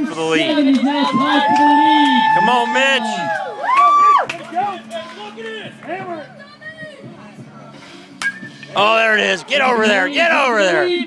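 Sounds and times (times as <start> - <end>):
spectators calling and shouting: 0.0 - 11.0.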